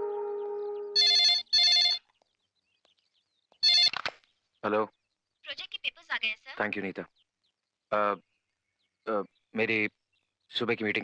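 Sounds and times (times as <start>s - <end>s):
landline telephone ringing: 1.0s - 2.0s, 3.6s - 4.0s.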